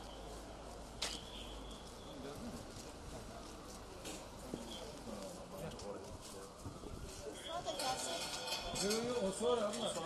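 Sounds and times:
footsteps on pavement: 0:00.0 - 0:07.2
people talking: 0:02.2 - 0:10.0.

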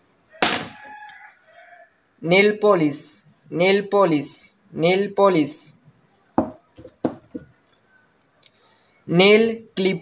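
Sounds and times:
rooster crowing: 0:00.3 - 0:02.1.

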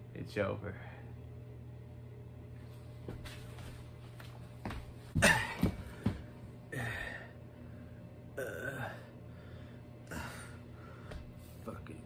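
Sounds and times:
man burping: 0:08.3 - 0:09.1.

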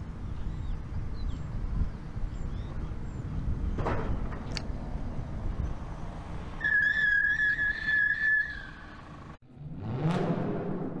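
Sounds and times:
car rolling with low rumble: 0:00.0 - 0:11.0
high whistle-like squeal: 0:06.6 - 0:09.0.

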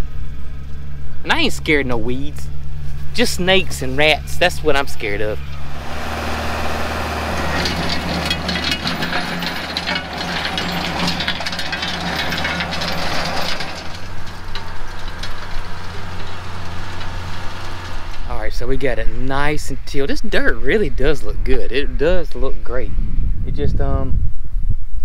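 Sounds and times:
tractor engine running: 0:00.0 - 0:19.4
rotary tiller churning soil: 0:05.4 - 0:18.4.

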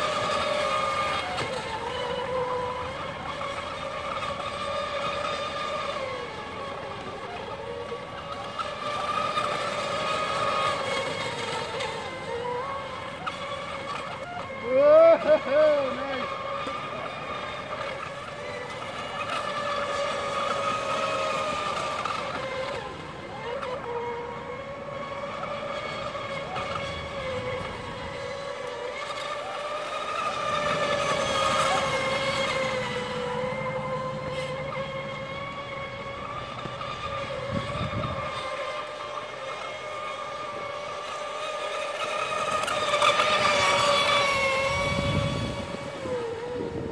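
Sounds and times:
toy boat motor whine: 0:00.0 - 0:46.9.

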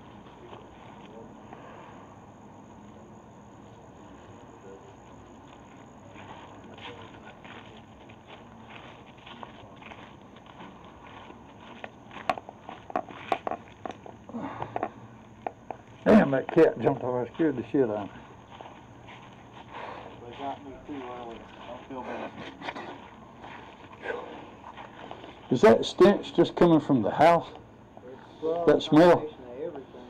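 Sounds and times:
footsteps on dry grass and dirt: 0:04.9 - 0:14.3, 0:15.3 - 0:25.6.

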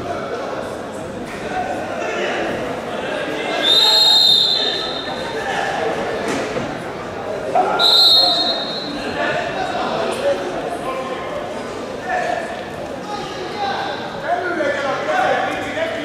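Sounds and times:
murmur of voices: 0:00.0 - 0:16.0
referee's whistle blasts: 0:03.6 - 0:05.2, 0:07.8 - 0:09.1.

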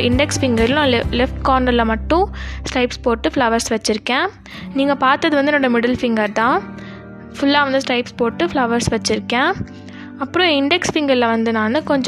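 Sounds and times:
woman speaking: 0:00.0 - 0:06.7, 0:07.4 - 0:12.0
background music: 0:00.0 - 0:12.0.

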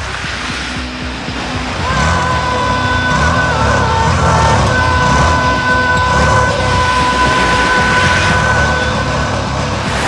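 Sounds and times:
film background music: 0:00.0 - 0:10.0
motorcycle engine running: 0:00.0 - 0:10.0.

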